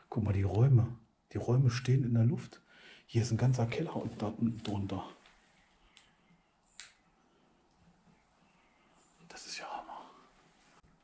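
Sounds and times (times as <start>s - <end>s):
man whispering: 3.1s - 5.2s, 9.0s - 10.4s.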